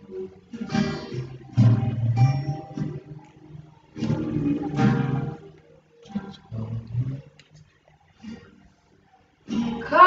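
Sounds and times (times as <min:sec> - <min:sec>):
acoustic guitar chords strummed: 0:00.0 - 0:08.8, 0:09.4 - 0:10.0.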